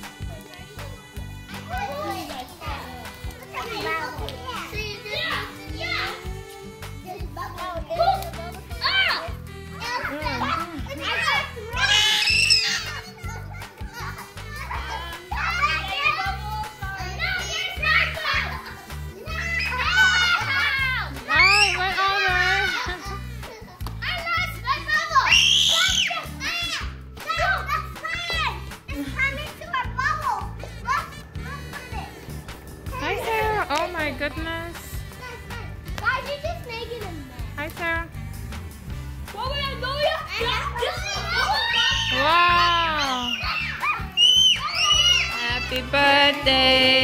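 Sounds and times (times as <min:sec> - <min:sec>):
background music: 0:00.0 - 0:47.0
children shouting and chattering: 0:00.0 - 0:47.0.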